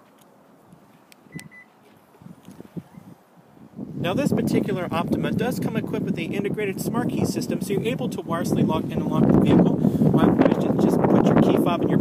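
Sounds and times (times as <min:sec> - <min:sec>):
car key fob beeps: 0:01.3 - 0:01.7.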